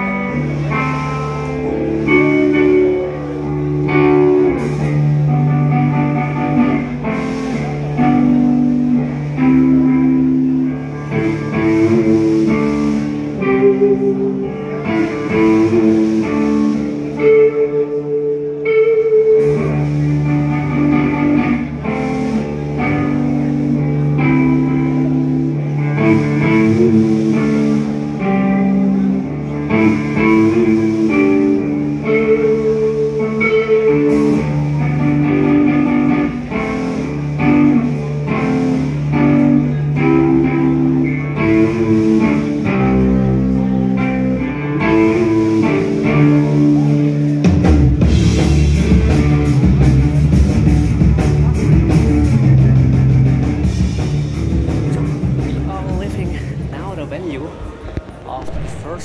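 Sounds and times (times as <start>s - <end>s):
electric guitar melody: 0.0s - 58.8s
sustained bass: 0.0s - 59.0s.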